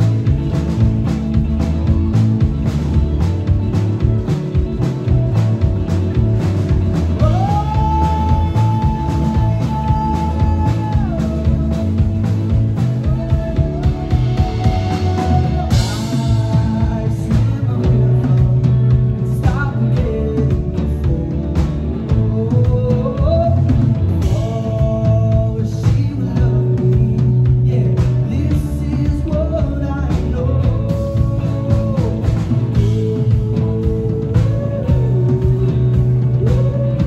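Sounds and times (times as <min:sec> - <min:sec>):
drum and cymbal hits: 0:00.0 - 0:37.0
electric bass: 0:00.0 - 0:37.0
electric guitar: 0:00.0 - 0:37.0.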